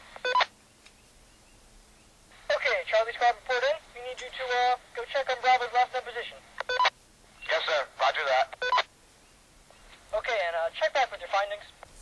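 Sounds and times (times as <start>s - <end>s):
walkie-talkie beep: 0.2s - 0.5s, 6.6s - 7.6s.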